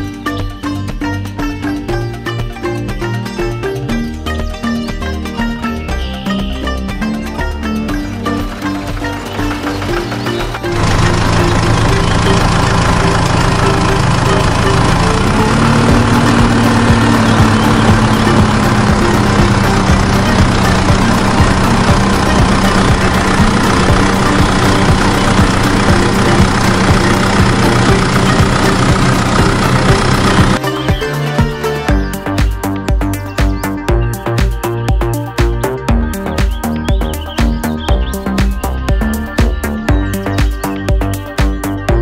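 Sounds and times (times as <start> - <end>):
toy tractor motor humming: 8.0 - 30.7.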